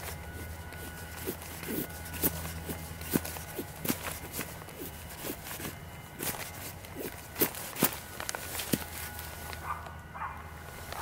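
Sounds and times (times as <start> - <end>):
knife shaving wooden stick: 0.0 - 9.3
rustling in dry leaf litter: 0.0 - 11.0.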